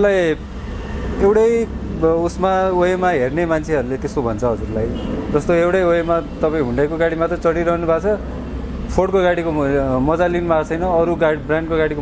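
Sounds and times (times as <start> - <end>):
man talking in a low voice: 1.2 - 8.2, 8.9 - 12.0.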